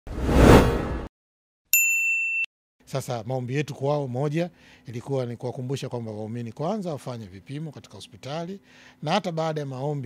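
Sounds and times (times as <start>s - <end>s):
swoosh sound effect: 0.1s - 1.1s.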